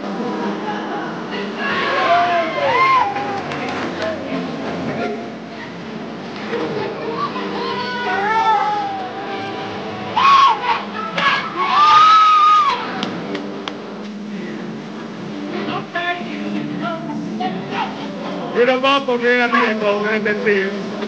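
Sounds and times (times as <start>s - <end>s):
crowd shouting: 0.5s - 13.2s.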